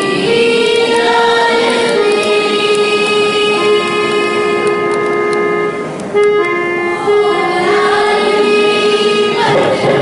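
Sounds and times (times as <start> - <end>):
choir singing in chorus: 0.0 - 4.9, 6.9 - 10.0.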